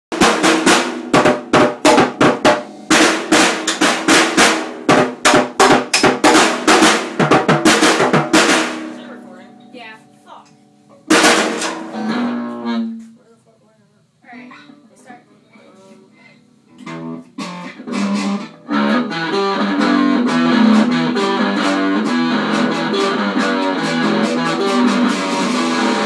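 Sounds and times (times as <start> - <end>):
loud electric guitar: 0.1 - 5.0, 16.8 - 26.0
fast hard drum strikes: 0.1 - 9.1, 11.1 - 12.4, 20.1 - 26.0.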